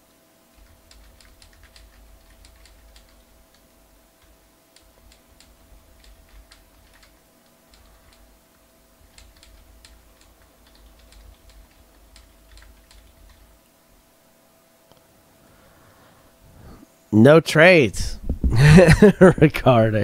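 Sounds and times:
steady low hum: 0:00.0 - 0:20.0
typing on computer keyboard: 0:00.5 - 0:08.4, 0:09.0 - 0:13.5.

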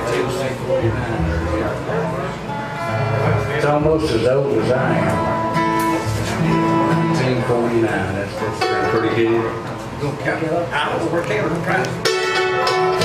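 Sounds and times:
bluegrass band playing: 0:00.0 - 0:13.0.

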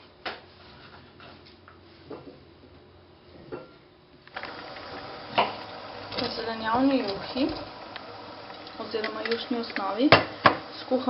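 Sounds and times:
steady hiss: 0:04.2 - 0:11.0.

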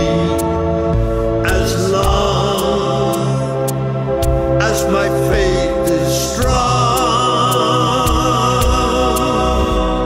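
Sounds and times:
two men singing in harmony: 0:00.0 - 0:00.7, 0:01.3 - 0:03.8, 0:04.5 - 0:10.0
sustained instrumental backing: 0:00.0 - 0:10.0.

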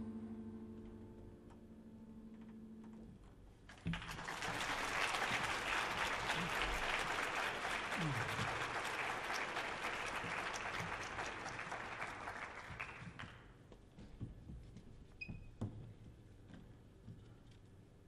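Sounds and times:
audience applauding: 0:03.7 - 0:13.4.

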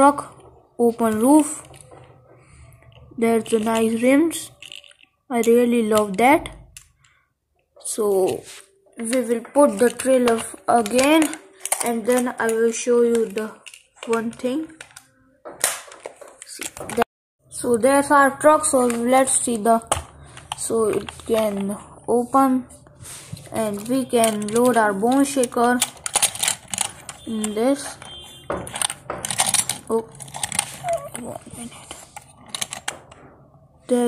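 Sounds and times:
toy truck rustling: 0:02.8 - 0:06.9, 0:08.0 - 0:15.2, 0:18.6 - 0:22.4, 0:23.1 - 0:33.2.

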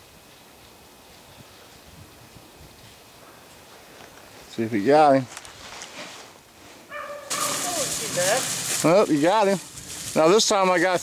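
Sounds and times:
rustling of dry leaves: 0:00.0 - 0:11.0
dog yipping: 0:06.9 - 0:07.7.

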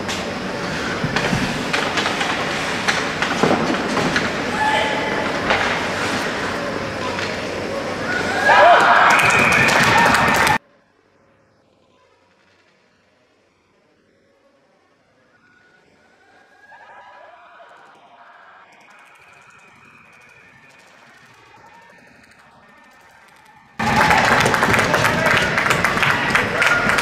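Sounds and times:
loud crowd noise: 0:00.0 - 0:10.6, 0:15.6 - 0:27.0
distant voices: 0:00.0 - 0:27.0.

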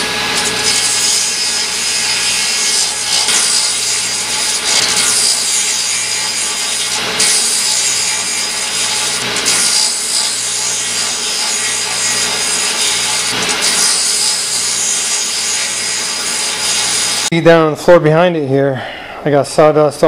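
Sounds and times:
saw blade cutting wood: 0:00.0 - 0:17.3
table saw motor humming: 0:00.0 - 0:17.3.

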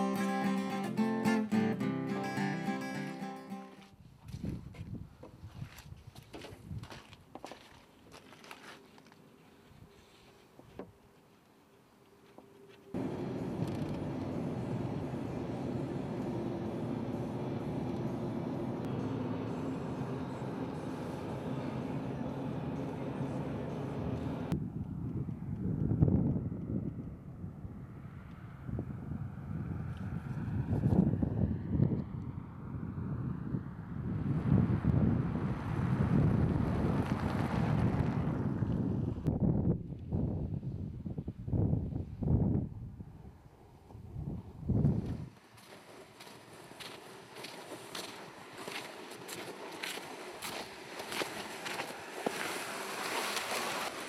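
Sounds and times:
car engine and tyre noise: 0:03.8 - 0:40.7, 0:42.9 - 0:54.0
vehicles driving past: 0:12.9 - 0:39.3, 0:45.2 - 0:54.0.

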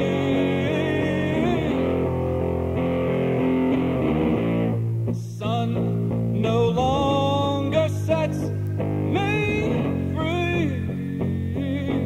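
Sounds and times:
person singing slow song: 0:00.0 - 0:02.8, 0:05.0 - 0:12.0
guitar chords ringing: 0:00.0 - 0:12.0.

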